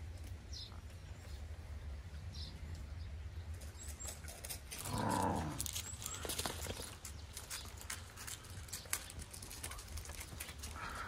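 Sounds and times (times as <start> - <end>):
light clicks and patter: 3.5 - 11.0.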